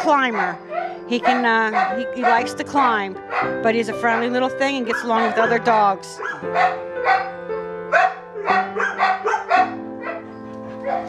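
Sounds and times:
background music with steady chords: 0.0s - 11.0s
dogs barking: 0.0s - 11.0s.

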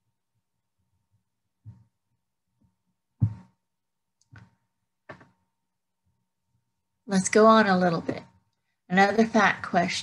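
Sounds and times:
dull thump: 3.2s - 3.6s.

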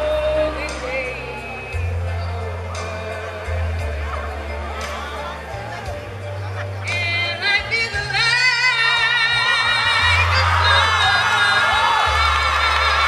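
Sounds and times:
woman singing into microphone: 0.0s - 1.9s, 6.9s - 12.8s
instrumental accompaniment with bass: 0.0s - 13.0s.

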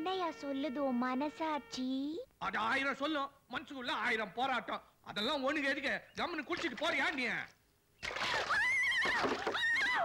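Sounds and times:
water poured from a mug: 6.5s - 7.2s, 8.0s - 9.6s
woman screaming: 8.2s - 10.0s.

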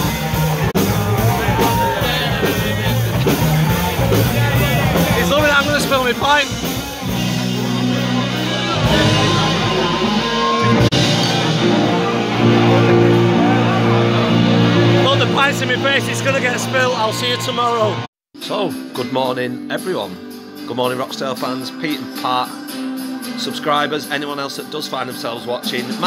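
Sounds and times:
electric guitars: 0.0s - 18.0s
live rock band playing: 0.0s - 19.1s.

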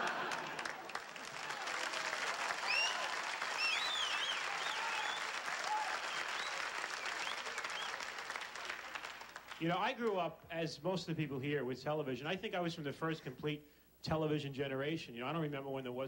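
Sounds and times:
studio audience applauding: 0.0s - 10.2s
short rising-and-falling whistles: 2.6s - 5.3s, 6.0s - 8.0s.

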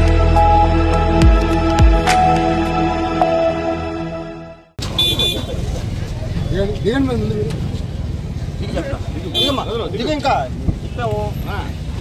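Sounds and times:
traffic rumble: 4.8s - 12.0s.

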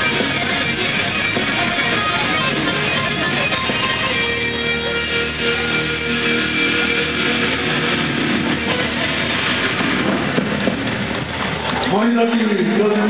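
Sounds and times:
crowd noise: 0.0s - 13.0s
electric guitar notes ringing: 0.0s - 13.0s
live rock music: 0.0s - 13.0s.

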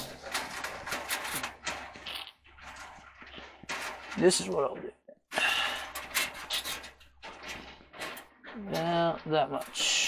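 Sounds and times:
gloved hands scraping metal: 0.0s - 4.7s, 5.4s - 10.0s.

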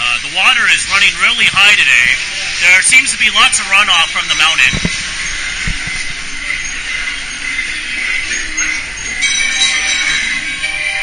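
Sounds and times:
ride show music: 0.0s - 11.0s.

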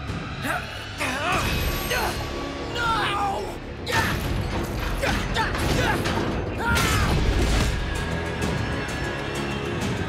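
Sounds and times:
dramatic music score: 0.0s - 10.0s.

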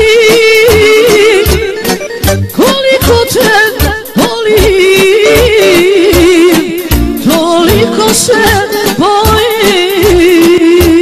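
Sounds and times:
folk-pop backing band: 0.0s - 11.0s.

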